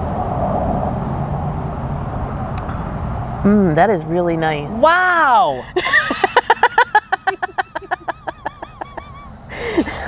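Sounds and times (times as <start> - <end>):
low outdoor rumble: 0.0 - 10.0
faint steady hum: 2.0 - 10.0.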